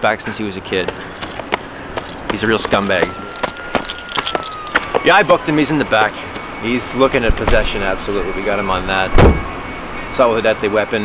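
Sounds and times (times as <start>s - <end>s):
knocks and scuffs: 0.7s - 5.1s
faint high whistle-like tone: 2.7s - 11.0s.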